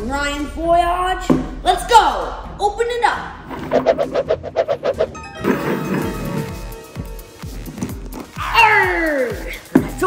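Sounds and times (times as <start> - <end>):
background music: 0.0 - 10.0
whoosh: 3.5 - 5.8.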